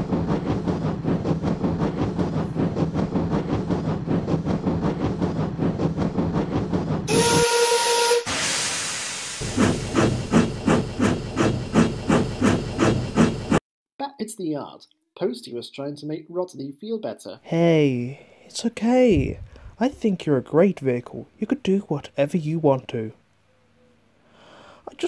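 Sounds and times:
steam locomotive chuffing: 0.0s - 13.6s
locomotive whistle blast: 7.1s - 9.4s
rush of steam: 7.1s - 12.9s.

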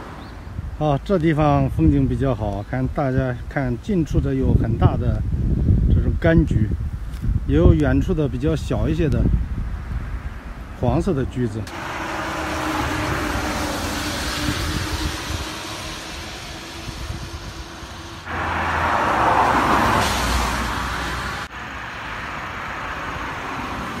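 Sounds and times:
road traffic noise: 0.0s - 24.0s.

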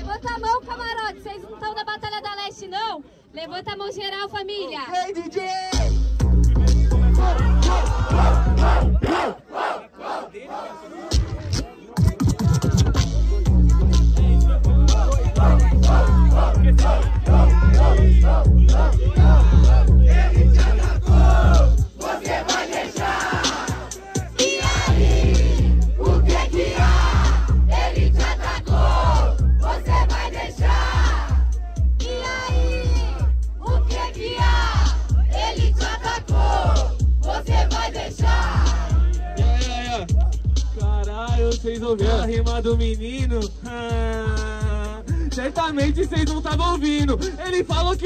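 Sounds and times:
hip-hop beat with heavy bass: 5.1s - 9.5s, 11.0s - 48.0s
crowd shouting: 6.9s - 11.4s, 14.2s - 39.7s.

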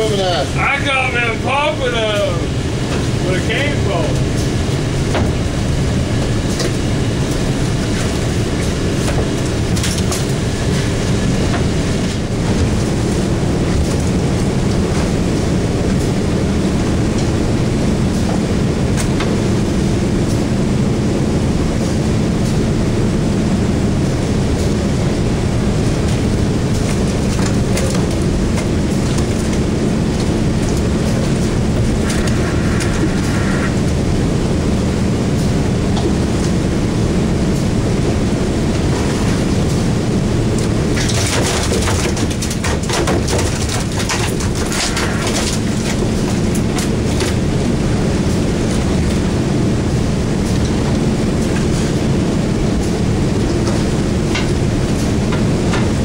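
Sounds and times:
boat engine idling: 0.0s - 41.1s, 42.3s - 56.0s.

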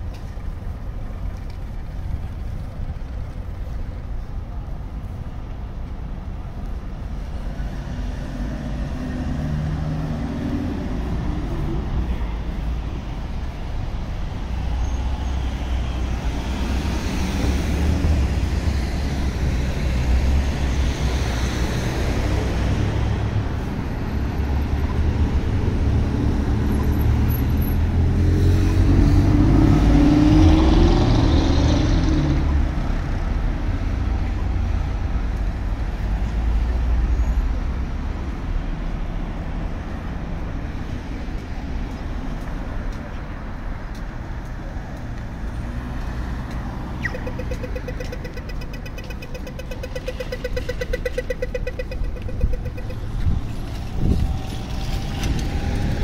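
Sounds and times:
road traffic passing: 0.0s - 56.0s
vehicle passing loudly: 7.4s - 12.5s, 45.3s - 56.0s
crossing signal rapid ticking: 46.4s - 56.0s
falling electronic chirp: 47.0s - 53.1s.

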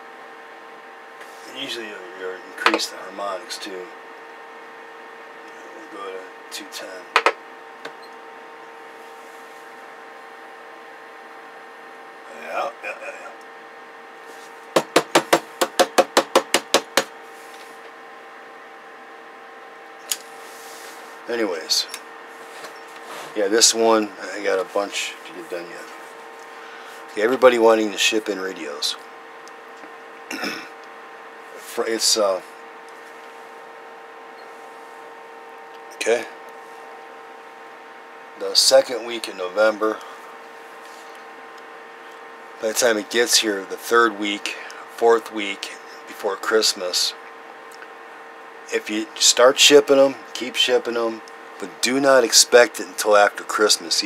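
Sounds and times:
steady electrical hum: 0.0s - 54.0s
taps on sheet-metal cover: 14.7s - 17.1s.

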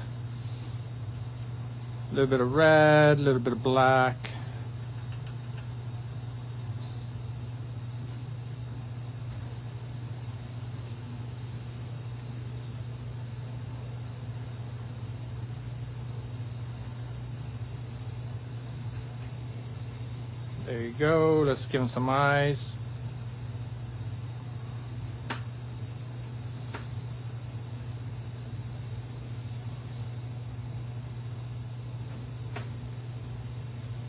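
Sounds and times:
low electrical hum: 0.0s - 34.0s.

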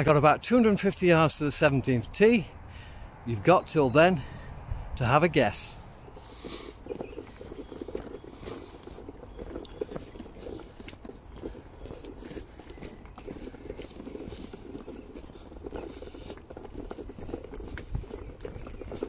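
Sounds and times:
footsteps on wet gravel: 0.0s - 19.0s
wind rumble on microphone: 5.8s - 19.0s.

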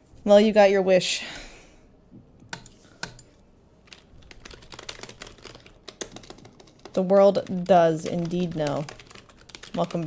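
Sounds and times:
computer keyboard typing: 3.9s - 10.0s.

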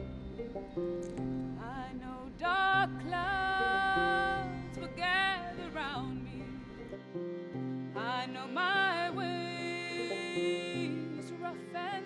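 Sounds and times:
low sustained strings: 0.0s - 12.0s
woman singing folk song: 1.4s - 7.0s, 7.9s - 12.0s.

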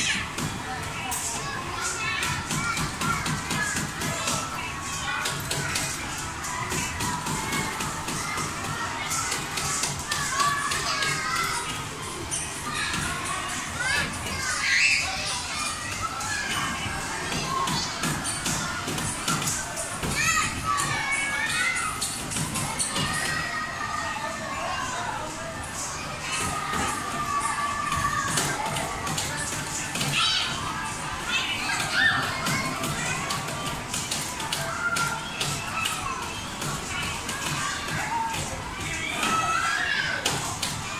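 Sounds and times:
children's voices calling out: 0.0s - 40.9s.

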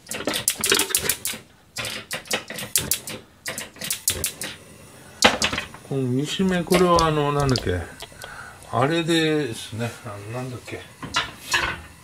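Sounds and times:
food frying in a pan: 4.4s - 12.0s.

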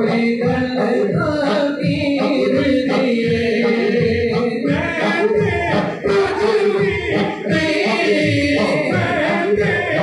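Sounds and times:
men singing devotional music: 0.0s - 10.0s.

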